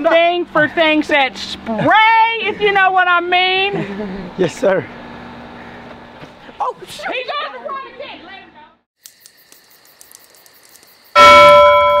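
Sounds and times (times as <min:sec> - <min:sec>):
bell ringing: 0:11.2 - 0:12.0.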